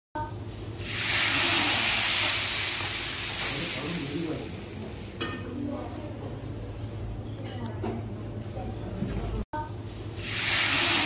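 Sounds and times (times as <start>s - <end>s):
sauce sizzling on meat: 0.7s - 5.2s, 10.2s - 11.0s.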